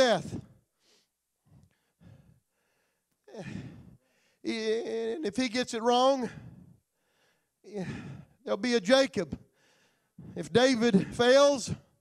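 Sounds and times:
man speaking: 0.0 - 0.5, 4.4 - 6.4, 7.7 - 9.4, 10.2 - 11.9
man breathing: 0.2 - 4.5, 6.2 - 8.5, 9.4 - 10.5.

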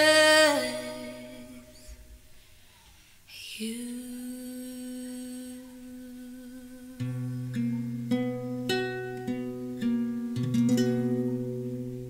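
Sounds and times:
woman singing a long note: 0.0 - 2.0, 3.3 - 7.2
acoustic guitar plucks: 7.0 - 12.0.

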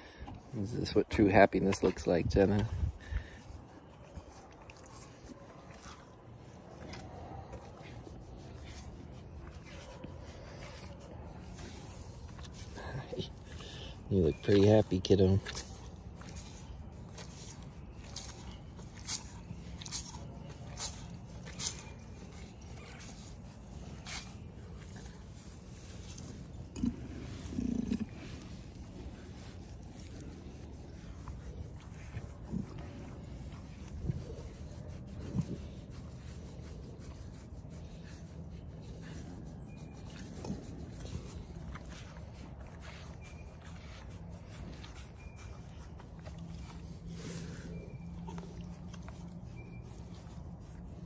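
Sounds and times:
cow being scratched: 0.0 - 51.0
cow grunting: 26.6 - 29.4.

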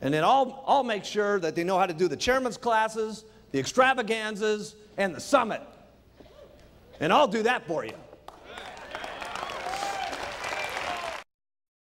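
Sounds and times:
audience applauding: 8.3 - 11.3.

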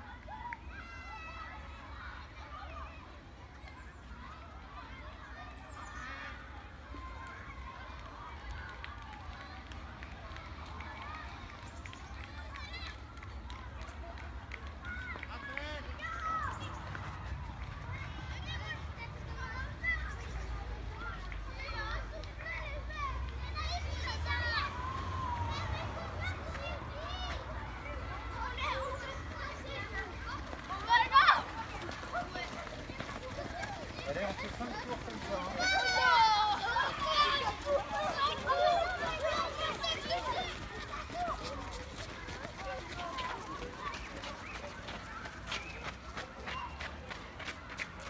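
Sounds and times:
distant children's voices: 0.0 - 48.0.

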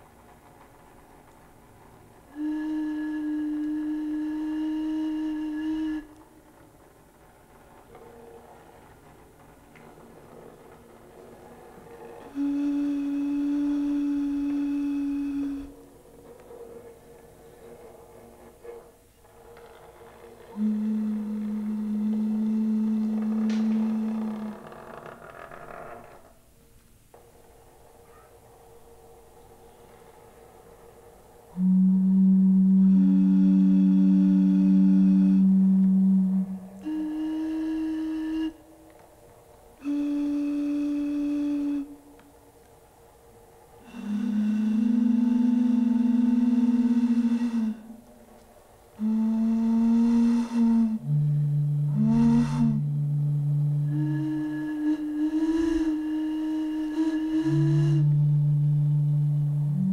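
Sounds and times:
breathy hiss: 1.2 - 59.9
blown wind instrument tones: 2.3 - 6.2, 11.8 - 16.8, 20.5 - 25.2, 31.5 - 39.0, 39.8 - 42.3, 43.8 - 48.3, 49.0 - 59.9
long held musical notes: 2.3 - 8.2, 10.6 - 18.9, 20.2 - 25.5, 26.5 - 59.9.

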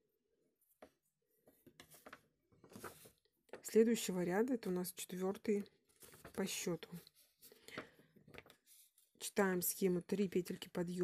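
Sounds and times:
faint rustling of lace: 0.6 - 4.2, 5.4 - 9.4.

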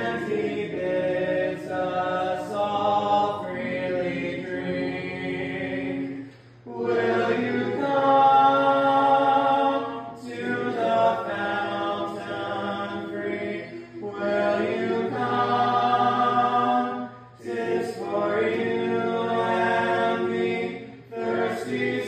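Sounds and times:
congregation singing a hymn unaccompanied: 0.0 - 22.0.

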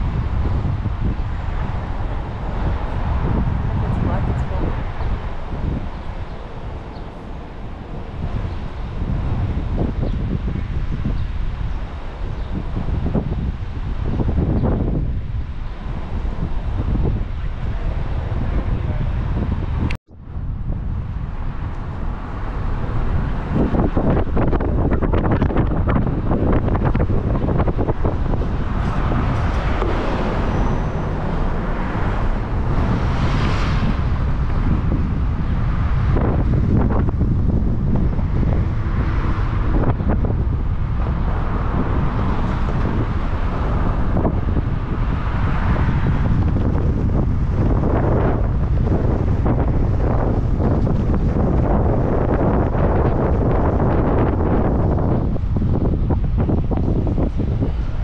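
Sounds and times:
car driving on road rumble: 0.0 - 58.0
wind buffeting microphone: 0.0 - 58.0.

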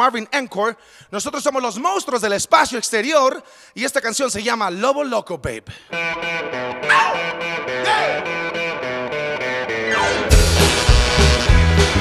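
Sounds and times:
electric guitar riff: 5.9 - 12.0
rock band playing: 5.9 - 12.0.

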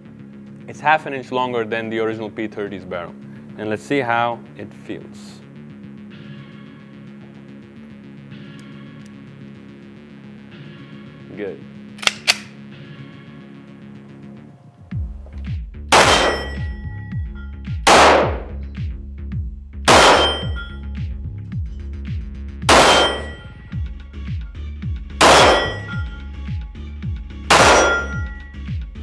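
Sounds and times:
pistol shots: 15.9 - 16.7, 17.9 - 18.6, 19.9 - 20.6, 22.7 - 23.4, 25.2 - 26.0, 27.5 - 28.4
steel target clanging: 16.0 - 16.8, 19.9 - 20.8, 22.7 - 23.5, 25.2 - 26.2, 27.5 - 28.4.

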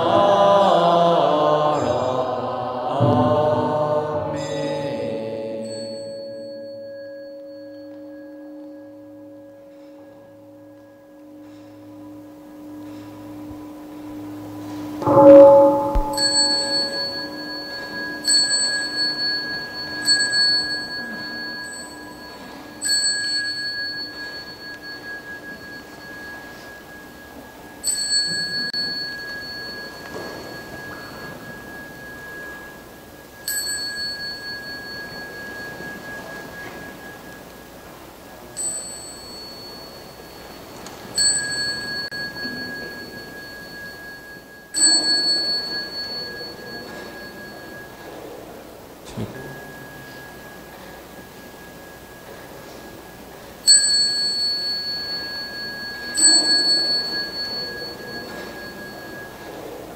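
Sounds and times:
deeper bell ringing: 3.0 - 59.9
small high-pitched bell ringing: 5.6 - 59.9.

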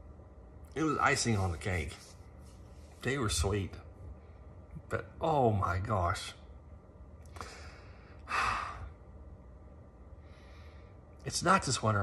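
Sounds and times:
man sighing: 7.4 - 8.9.

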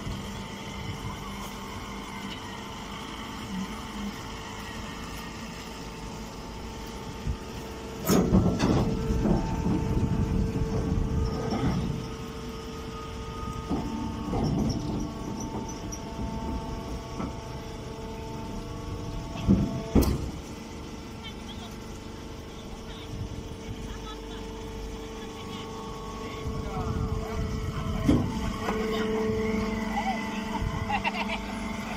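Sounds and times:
baling machine engine humming: 0.0 - 31.9.

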